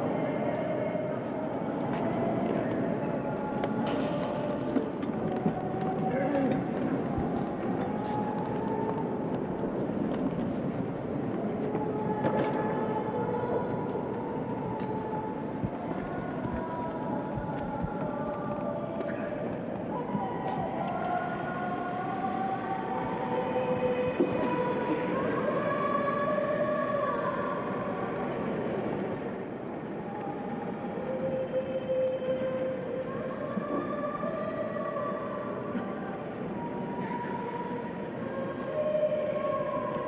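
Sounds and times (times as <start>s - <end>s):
steady background noise: 0.0s - 40.0s
woman singing slow melody: 11.4s - 28.7s, 29.9s - 40.0s.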